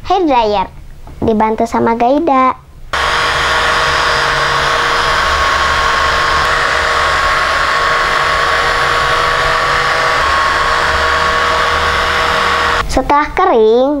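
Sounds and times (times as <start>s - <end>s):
hair dryer running: 3.0s - 12.8s.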